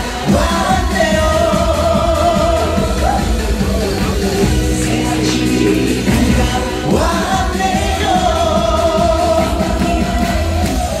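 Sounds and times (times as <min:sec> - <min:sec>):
karaoke backing track: 0:00.0 - 0:11.0.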